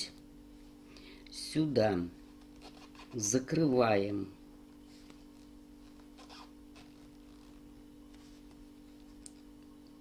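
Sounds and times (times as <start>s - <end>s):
steady low hum: 0.0s - 10.0s
yarn scratching on crochet hook: 2.6s - 3.3s.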